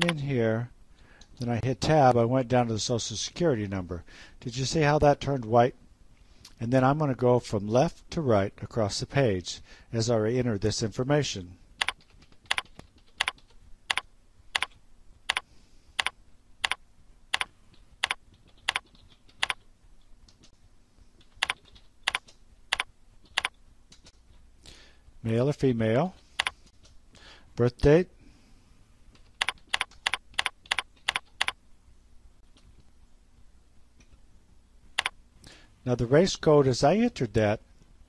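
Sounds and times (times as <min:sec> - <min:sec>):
keyboard typing clicks: 0:11.8 - 0:15.4, 0:16.0 - 0:19.7, 0:21.2 - 0:24.1, 0:26.4 - 0:27.0, 0:29.2 - 0:31.6, 0:35.0 - 0:35.2.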